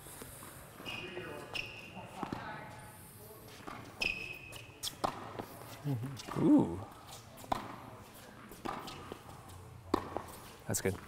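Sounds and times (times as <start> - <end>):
tennis balls bouncing on court: 0.4 - 2.7, 3.5 - 11.0
tennis balls struck by rackets: 1.6 - 2.6, 3.6 - 5.6, 6.2 - 6.8, 7.4 - 11.0.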